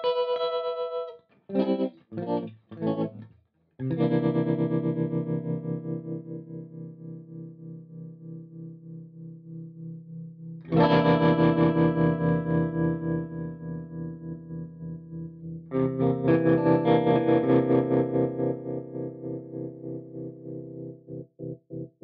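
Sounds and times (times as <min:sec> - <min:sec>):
electric guitar chords with tremolo: 0:00.0 - 0:03.2, 0:03.8 - 0:21.9.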